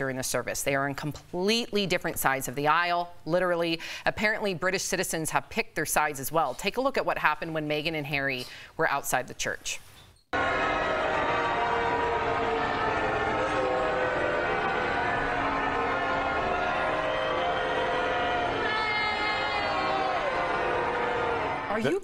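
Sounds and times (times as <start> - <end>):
crowd booing: 10.4 - 22.0.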